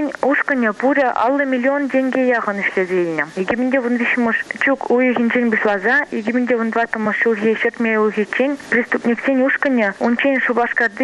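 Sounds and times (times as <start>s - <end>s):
person talking: 0.0s - 11.0s.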